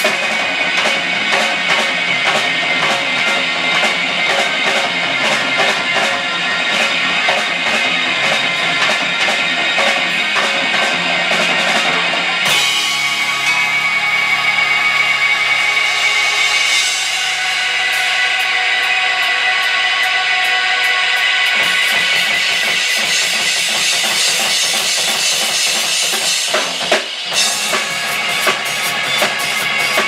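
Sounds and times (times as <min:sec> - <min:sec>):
distorted electric guitar chords: 0:00.0 - 0:30.0
fast drum beat: 0:00.0 - 0:30.0.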